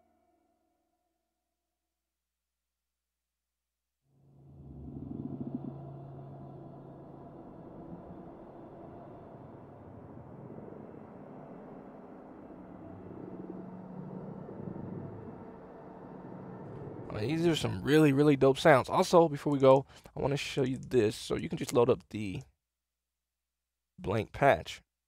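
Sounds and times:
dark rumbling synth drone: 0:04.2 - 0:18.0.

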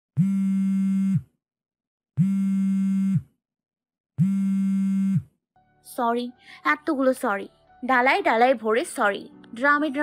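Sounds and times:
synthesized buzzing tone: 0:00.2 - 0:01.3, 0:02.2 - 0:03.4, 0:04.2 - 0:05.4.

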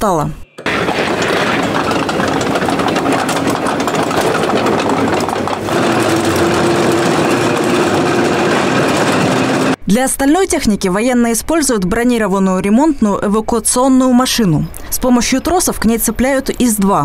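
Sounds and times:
tracked vehicle engine clattering: 0:00.6 - 0:09.8.

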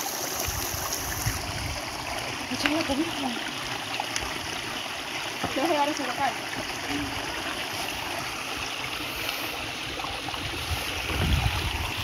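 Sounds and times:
river running over rocks: 0:00.0 - 0:12.0.

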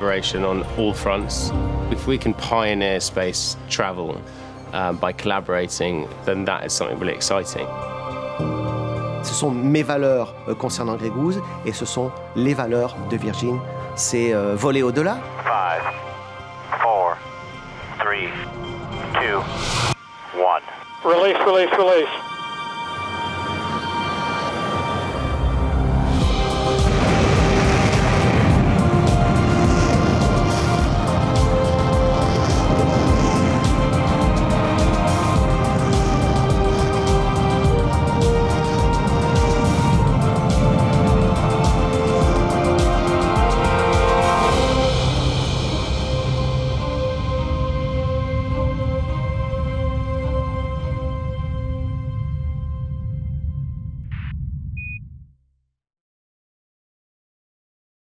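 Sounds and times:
music with long held tones: 0:13.1 - 0:53.9
deep low rumble: 0:25.4 - 0:43.7
rocket motor roaring: 0:26.2 - 0:44.8
burst of static: 0:26.5 - 0:33.2.

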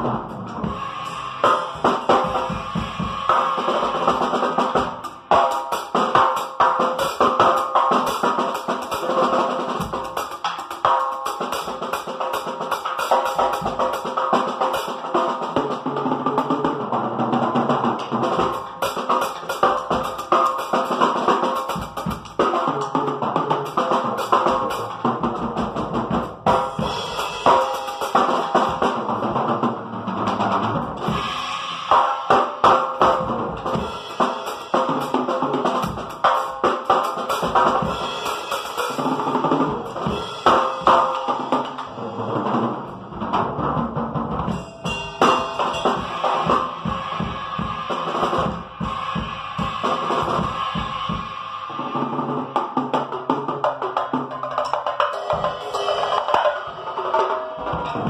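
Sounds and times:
cymbals: 0:00.0 - 0:58.0.

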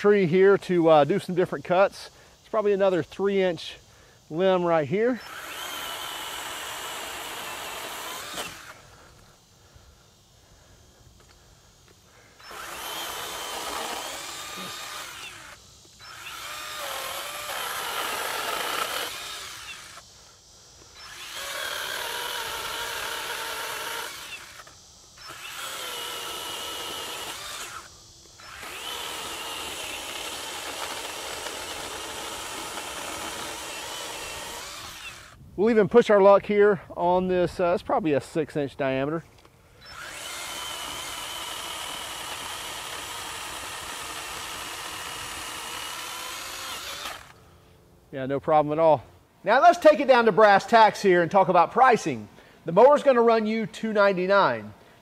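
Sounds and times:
pole saw cutting wood: 0:05.2 - 0:08.8, 0:12.4 - 0:20.1, 0:20.8 - 0:35.4, 0:39.8 - 0:47.4.

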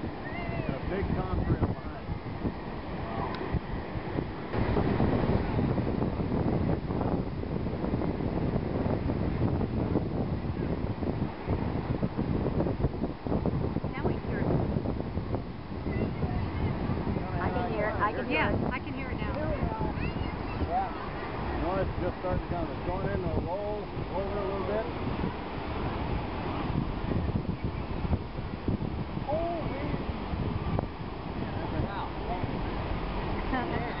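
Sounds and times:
waves breaking on beach: 0:00.0 - 0:34.0
wind buffeting microphone: 0:00.0 - 0:34.0
crowd voices: 0:15.7 - 0:28.1.

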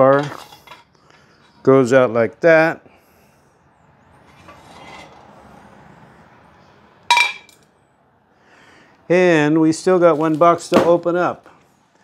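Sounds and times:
metal bars being handled: 0:00.0 - 0:01.7, 0:04.2 - 0:05.3, 0:07.1 - 0:07.7.

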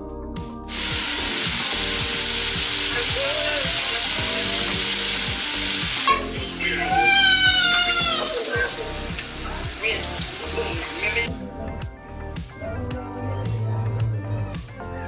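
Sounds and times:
chicken deep-frying in oil: 0:00.7 - 0:11.3.

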